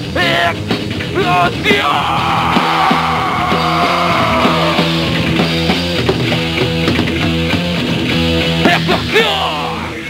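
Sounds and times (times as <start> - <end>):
rock band playing: 0.0 - 10.0
guitar note sliding down: 3.3 - 6.0.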